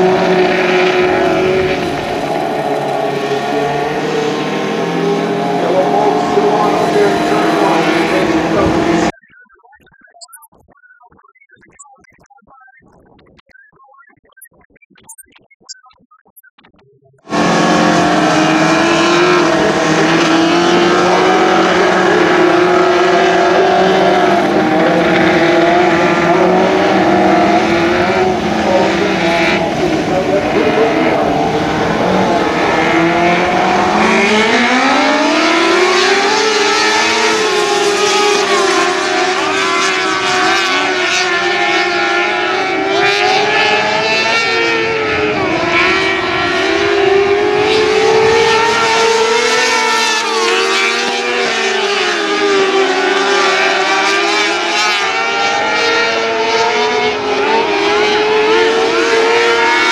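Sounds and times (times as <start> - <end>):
racing car engines: 0.0 - 9.2, 17.2 - 59.9.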